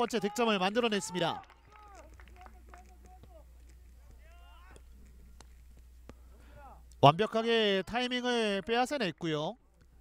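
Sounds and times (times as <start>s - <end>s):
distant players shouting: 0.0s - 4.9s
low steady hum: 2.0s - 8.5s.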